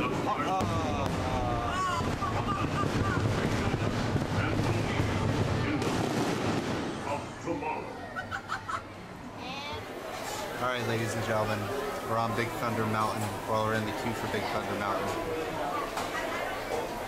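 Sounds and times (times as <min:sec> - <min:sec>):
steady noisy rumble: 0:01.1 - 0:07.4.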